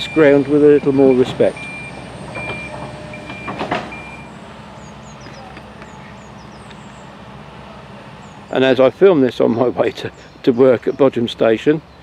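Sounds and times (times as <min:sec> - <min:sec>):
reversing alarm beeping: 0:00.0 - 0:05.3
machinery engine hum: 0:00.0 - 0:12.0.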